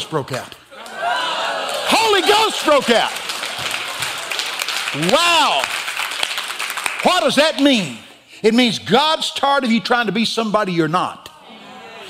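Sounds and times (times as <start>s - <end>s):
congregation applauding: 0.8s - 7.9s.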